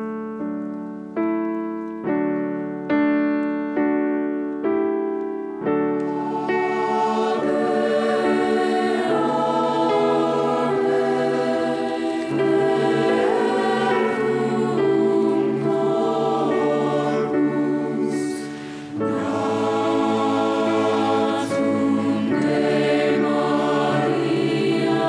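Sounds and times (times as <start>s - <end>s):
church choir singing a hymn: 5.7s - 25.0s.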